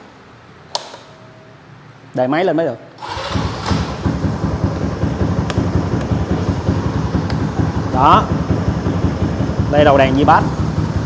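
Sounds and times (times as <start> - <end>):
motorcycle engine starting and idling: 3.0 - 11.0.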